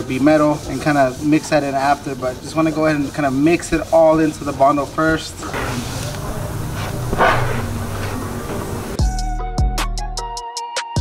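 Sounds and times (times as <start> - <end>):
plastic spreader scraping filler: 0.8 - 9.0
steady low hum: 5.4 - 9.0.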